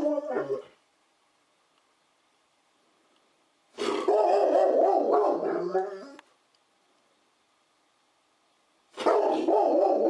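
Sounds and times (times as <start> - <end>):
dog howling: 0.0 - 0.7, 4.0 - 6.2, 9.0 - 10.0.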